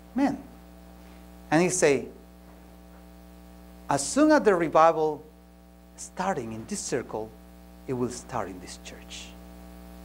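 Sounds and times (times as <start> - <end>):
electrical mains hum: 0.0 - 10.0
man speaking: 0.1 - 0.6, 1.5 - 2.2, 3.9 - 5.3, 6.0 - 9.4.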